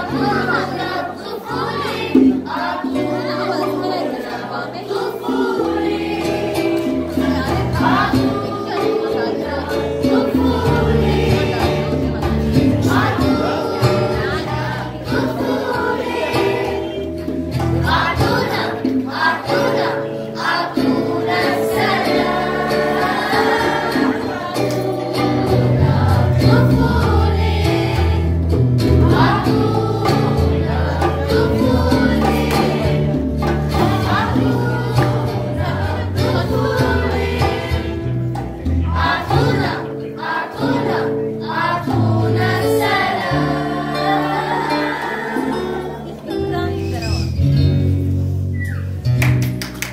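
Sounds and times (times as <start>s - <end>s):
girls singing in chorus: 0.0s - 46.6s
low instrumental accompaniment: 0.0s - 49.9s.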